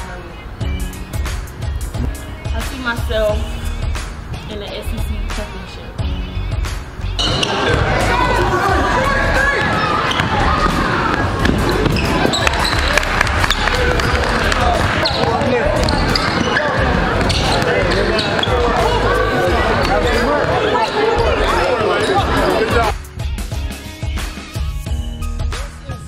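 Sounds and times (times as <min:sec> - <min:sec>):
chatter and calls of people: 0:00.0 - 0:26.0
basketball bouncing on wooden floor: 0:15.0 - 0:18.6.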